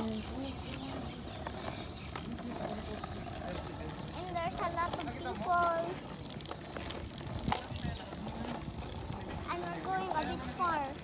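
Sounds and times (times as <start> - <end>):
kick scooter rolling on concrete: 0.0 - 11.0
walking footsteps: 0.0 - 11.0.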